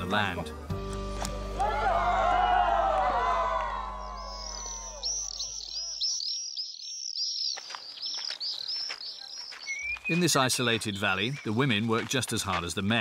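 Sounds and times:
music: 0.0 - 4.4
small bird chirping: 4.0 - 11.9
footsteps on gravel: 7.5 - 13.0.

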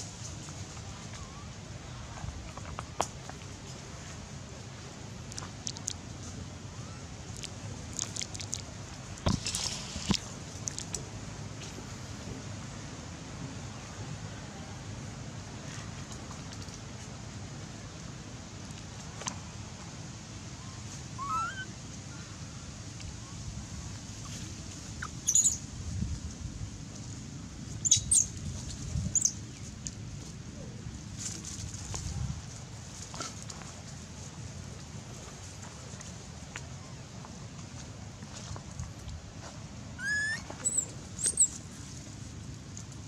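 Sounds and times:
baby monkey squeaky call: 21.2 - 21.7, 25.0 - 25.6, 27.8 - 28.3, 29.2 - 29.4, 40.0 - 41.6.

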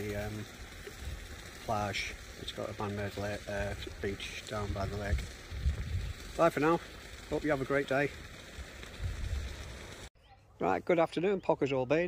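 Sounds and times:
steady hiss: 0.0 - 10.1.

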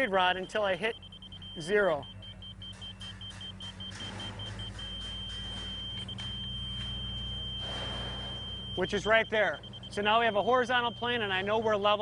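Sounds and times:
low engine rumble: 0.0 - 12.0
rapid beeping: 0.0 - 12.0
steady electronic tone: 0.5 - 12.0.

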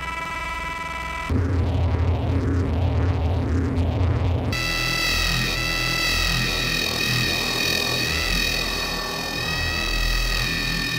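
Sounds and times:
sustained electronic tone: 0.0 - 10.9
low throbbing drone: 1.2 - 10.9
pulsing bass: 1.3 - 10.9.

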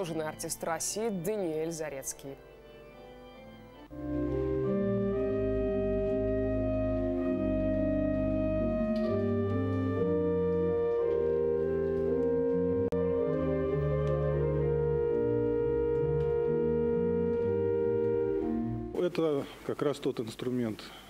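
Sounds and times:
deep organ pedal notes: 1.3 - 19.1
pipe organ playing slow chords: 2.4 - 19.0.

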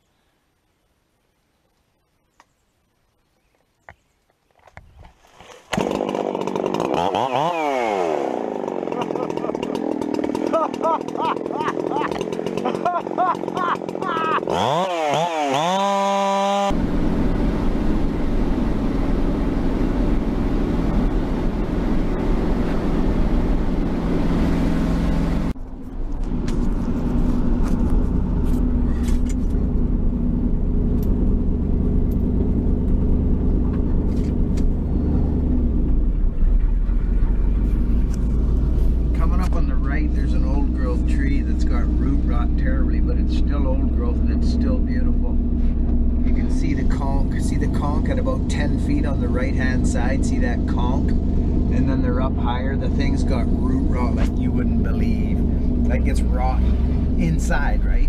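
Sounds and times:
chainsaw revving: 5.3 - 25.6, 37.1 - 57.5
truck engine and road rumble: 6.9 - 58.0.

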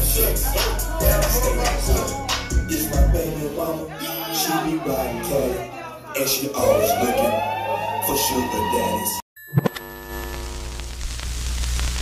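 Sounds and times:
crackling hiss with clicks: 10.2 - 12.0.

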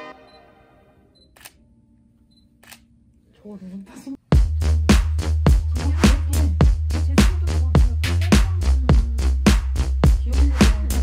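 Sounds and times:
piano music: 0.0 - 1.0
camera shutter clicks: 2.6 - 2.9.

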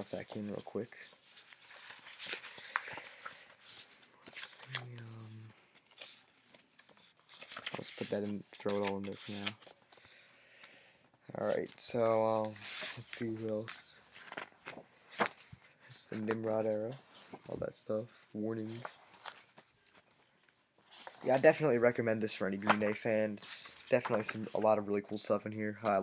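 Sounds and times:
paper rustling and sliding: 0.0 - 9.7, 11.4 - 17.6
paper rustling and tapping: 13.1 - 16.6, 22.6 - 25.2.

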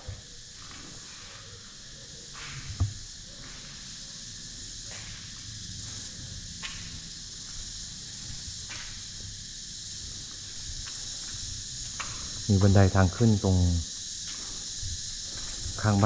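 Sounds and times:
high-pitched insect chorus: 0.0 - 16.0.

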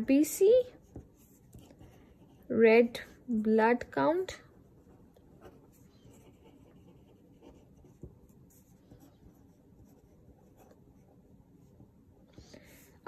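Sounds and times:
pen scratching on paper: 4.6 - 11.7.

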